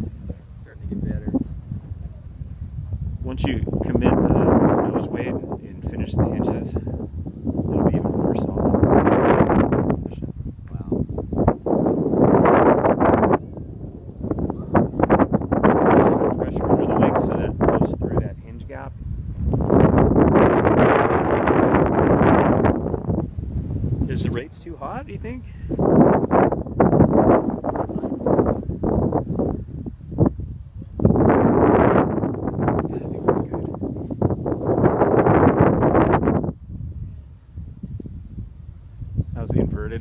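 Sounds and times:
gusty wind on microphone: 0:00.0 - 0:40.0.

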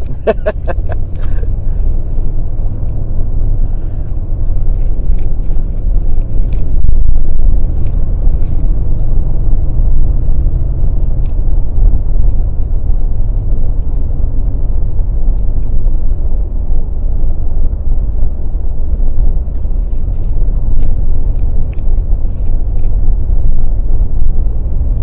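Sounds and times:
road rumble inside vehicle: 0:00.0 - 0:25.0.

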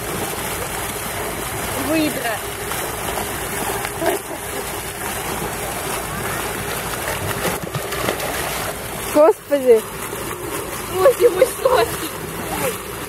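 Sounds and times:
water splashing and sloshing: 0:00.0 - 0:13.0.

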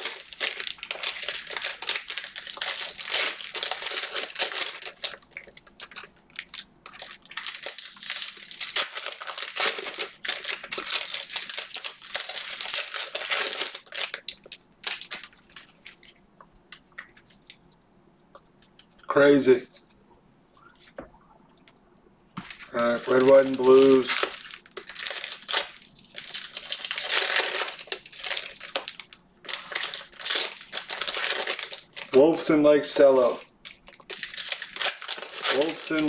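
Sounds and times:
cellophane wrappers crinkling: 0:00.0 - 0:17.6, 0:22.4 - 0:36.0.

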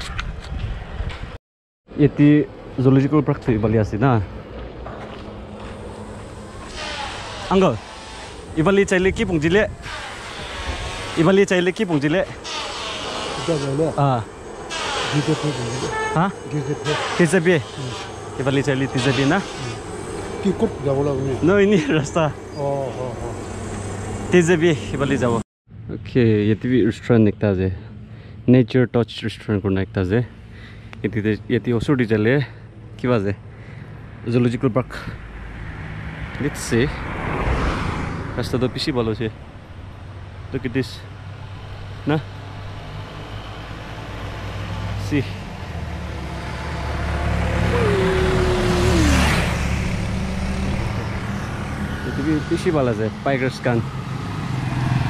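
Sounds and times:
road and wind noise: 0:00.0 - 0:55.0
vehicle engine drone: 0:01.9 - 0:55.0
man speaking: 0:15.2 - 0:19.8, 0:52.0 - 0:53.9.

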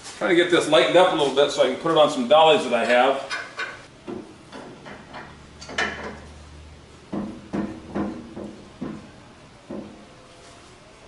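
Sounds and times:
metal clanks and knocks: 0:03.3 - 0:06.4, 0:07.1 - 0:10.0.

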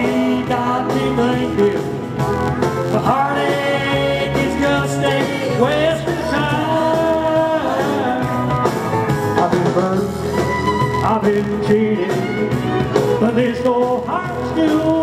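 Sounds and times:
country band playing: 0:00.0 - 0:15.0
electric guitar string bends: 0:08.5 - 0:14.0.

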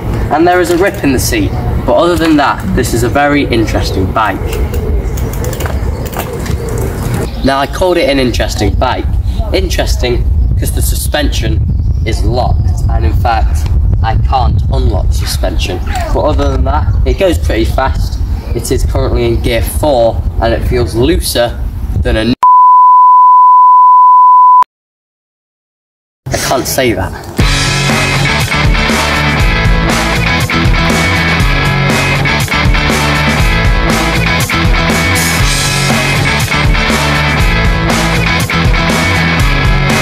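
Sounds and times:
wind rumble on microphone: 0:00.0 - 0:22.4
censor bleep tone: 0:22.4 - 0:24.7.

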